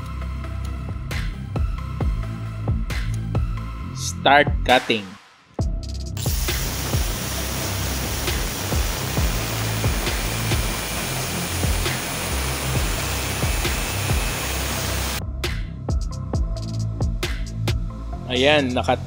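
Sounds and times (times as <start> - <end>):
background music with low beat: 0.0 - 19.0
angle grinder cutting steel pipe: 6.2 - 15.2.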